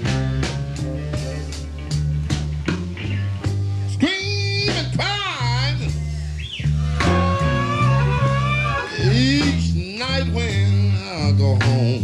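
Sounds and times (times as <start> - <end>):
bending lead guitar line: 0.0 - 11.9
bass and drums beat: 0.0 - 12.0
electric blues band playing: 0.0 - 12.0.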